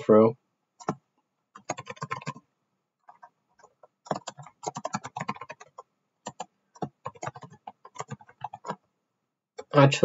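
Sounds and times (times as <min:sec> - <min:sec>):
typing on computer keyboard: 0:00.8 - 0:01.0, 0:01.6 - 0:02.4, 0:03.0 - 0:08.8.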